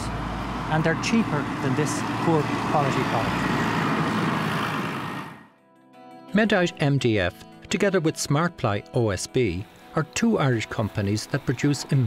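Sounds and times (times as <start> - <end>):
road traffic noise: 0.0 - 5.6
soft music with sustained notes: 5.5 - 12.0.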